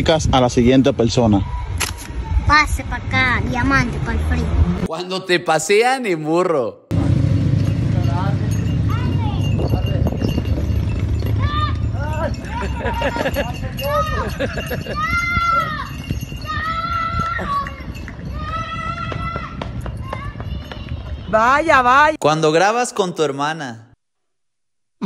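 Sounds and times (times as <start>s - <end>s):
low outdoor rumble: 6.9s - 17.3s
shrill drawn-out cries: 11.2s - 21.3s.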